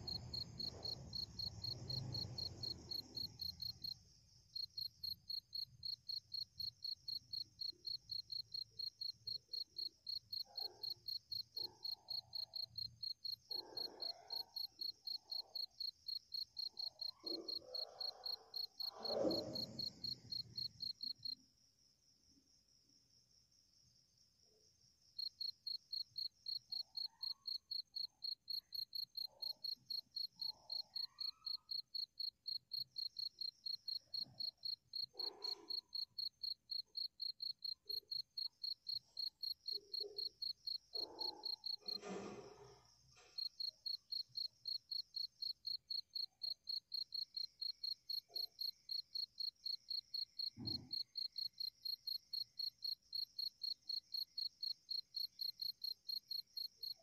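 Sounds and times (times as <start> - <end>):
cricket chirping: 0.0 - 57.0.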